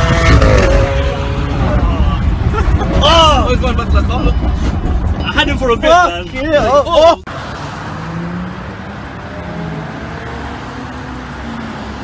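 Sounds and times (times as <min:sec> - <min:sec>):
car engine rumble: 0:00.0 - 0:12.0
road noise inside car: 0:00.0 - 0:12.0.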